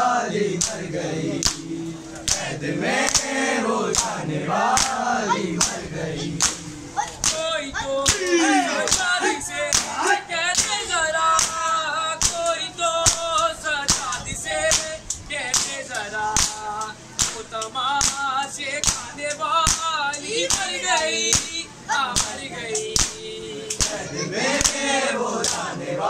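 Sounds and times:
lament being sung: 0.0 - 26.0
hands slapping chests in unison: 0.5 - 10.8, 11.4 - 19.1, 19.7 - 19.9, 20.5 - 21.6, 22.2 - 26.0.

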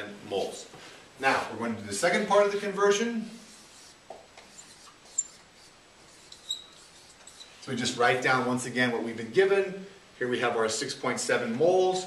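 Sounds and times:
marker squeaking on a whiteboard: 3.4 - 7.7.

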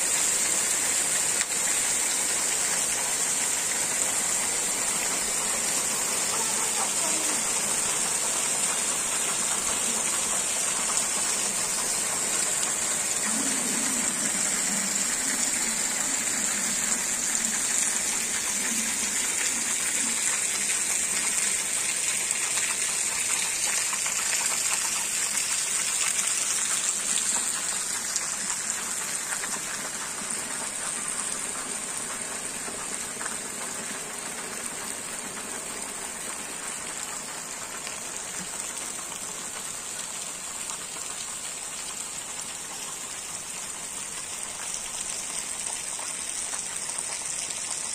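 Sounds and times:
heavy rain on paving and leaves: 0.0 - 47.9.

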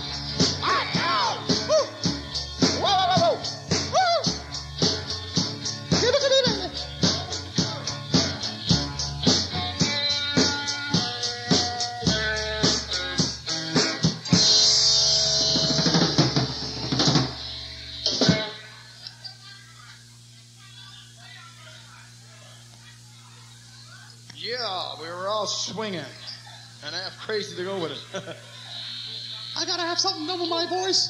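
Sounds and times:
live rock band playing: 0.0 - 18.7.

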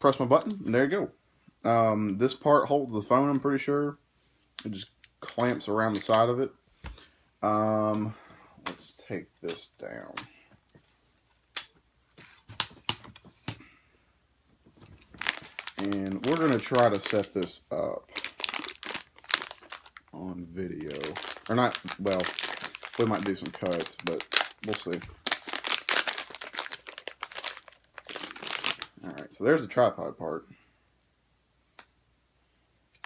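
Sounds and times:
wrapper crinkling: 5.2 - 6.3, 14.7 - 29.4.

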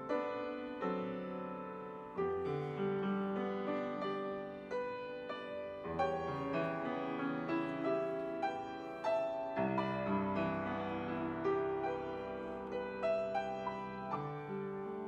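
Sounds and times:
slow gentle piano piece: 0.0 - 15.0.

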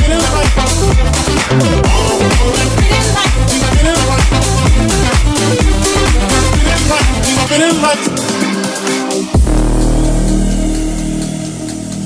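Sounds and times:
heavy held bass note: 0.0 - 7.0, 9.4 - 12.0
electronic dance music: 0.0 - 12.0.

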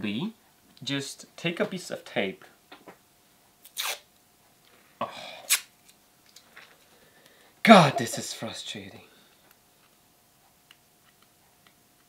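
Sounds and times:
tape ripping: 3.6 - 4.0
adhesive tape peeling off roll: 3.6 - 4.1.

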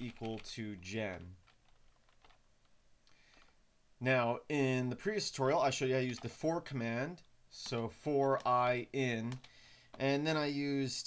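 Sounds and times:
faint keyboard typing: 0.0 - 3.6, 6.0 - 6.4, 7.1 - 10.3.

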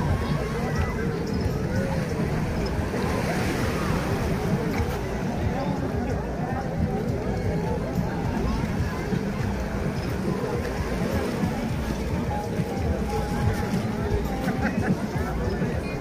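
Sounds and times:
crowd voices: 0.0 - 16.0
small waves washing ashore: 0.0 - 16.0.

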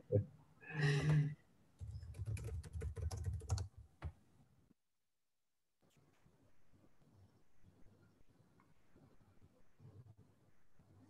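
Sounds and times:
keyboard typing: 1.8 - 4.2.

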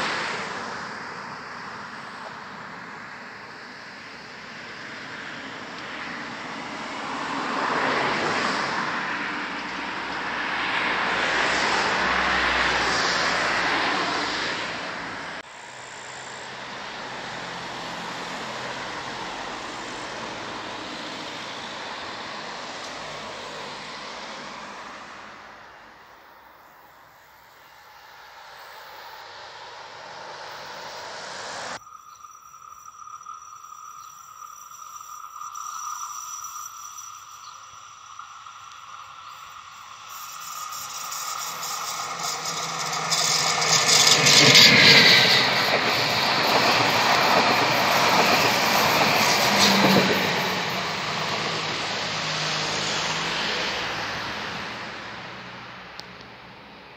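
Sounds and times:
vehicles passing on road: 0.0 - 56.9.

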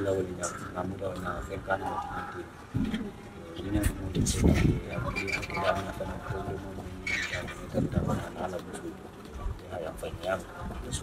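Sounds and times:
low voices: 0.0 - 11.0.

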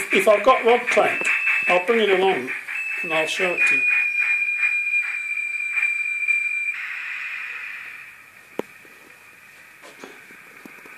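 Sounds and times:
steam hiss: 0.0 - 4.4, 6.8 - 10.9
steady high whistle: 0.8 - 8.2.

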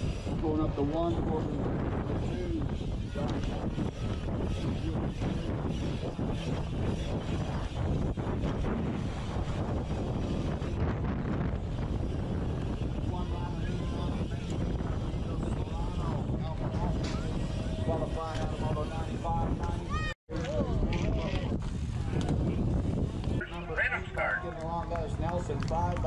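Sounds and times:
bike tyres rolling on track: 0.0 - 26.0
wind buffeting microphone: 0.0 - 26.0
faint voices: 23.3 - 26.0.

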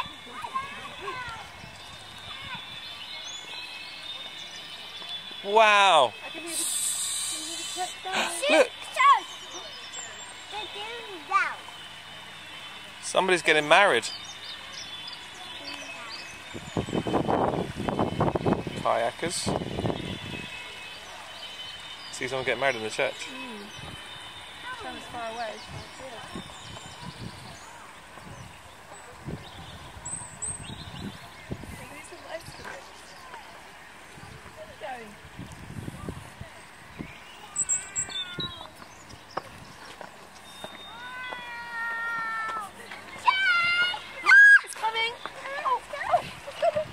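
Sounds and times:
faint distant voices: 0.0 - 46.9
footsteps on paved path: 0.0 - 46.9.

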